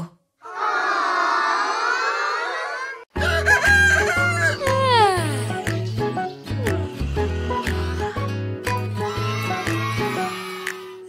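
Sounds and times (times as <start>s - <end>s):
rooster crowing: 3.2s - 4.7s.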